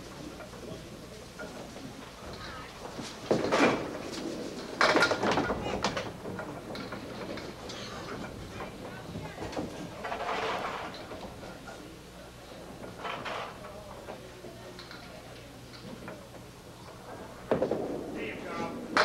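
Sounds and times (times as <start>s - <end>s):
indistinct spectator chatter: 0.0s - 3.3s, 7.6s - 19.0s
steady low hum: 0.0s - 19.0s.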